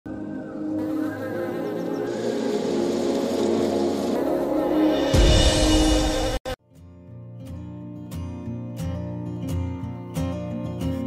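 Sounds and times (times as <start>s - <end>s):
background music: 0.1s - 6.6s.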